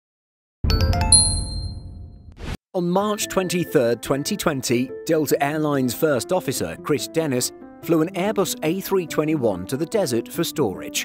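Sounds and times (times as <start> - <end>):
bright chiming notes: 0.7 - 1.9.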